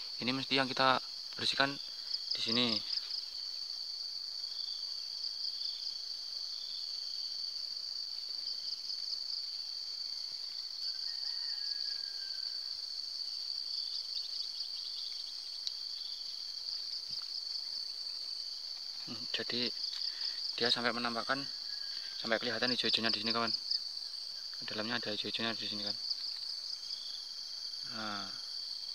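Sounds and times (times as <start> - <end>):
insects trilling: 0.0 - 28.9
faint ticks: 15.0 - 15.8.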